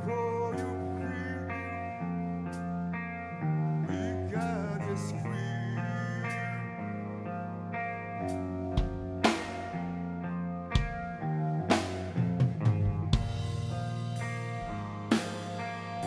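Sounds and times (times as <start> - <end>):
electric guitar chords ringing: 0.0 - 16.0
drum and cymbal hits: 11.7 - 15.9.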